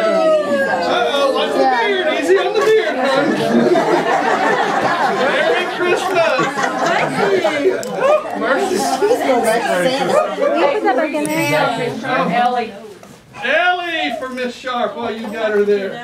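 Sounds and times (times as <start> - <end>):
indistinct chatter of people: 0.0 - 16.0.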